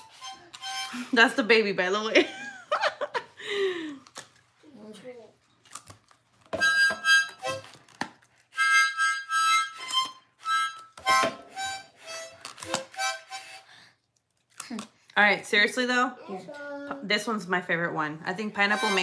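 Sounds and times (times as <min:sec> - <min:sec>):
harmonica chords: 0:00.0 - 0:02.0, 0:06.6 - 0:13.9, 0:18.4 - 0:19.0.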